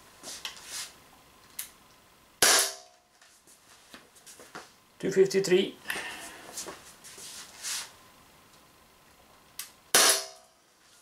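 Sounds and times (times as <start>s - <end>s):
air pistol shot: 2.4s - 2.8s, 9.9s - 10.4s.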